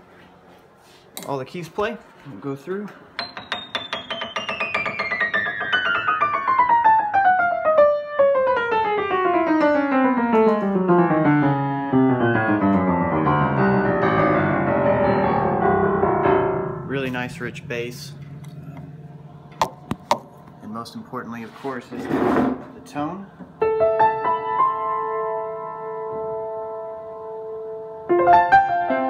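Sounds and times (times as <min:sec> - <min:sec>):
piano descending run: 0:03.2 - 0:19.6, 0:23.6 - 0:29.0.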